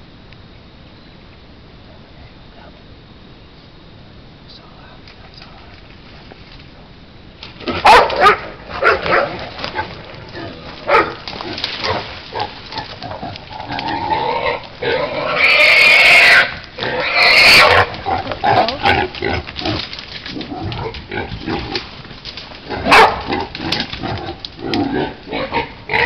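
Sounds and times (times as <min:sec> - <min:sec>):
wild hog squealing: 0:07.6 - 0:22.0, 0:22.6 - 0:26.0.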